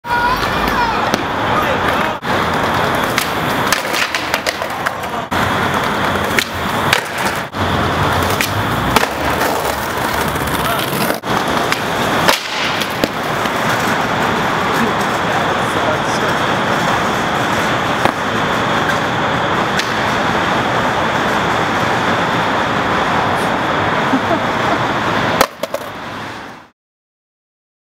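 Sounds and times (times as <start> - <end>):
city traffic noise: 0.0 - 26.7
skateboard wheels rolling on concrete: 0.0 - 26.7
skateboard clacks: 0.1 - 20.3, 25.4 - 26.0.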